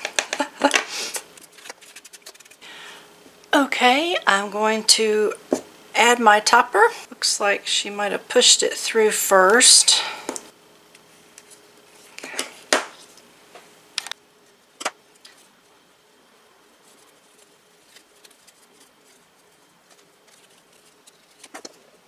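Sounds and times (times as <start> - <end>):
paper and fabric rustling: 1.4 - 2.6, 16.7 - 22.0.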